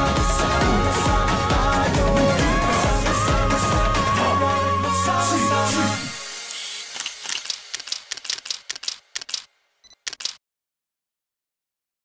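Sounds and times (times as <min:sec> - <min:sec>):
camera shutter clicking: 0:06.5 - 0:10.4.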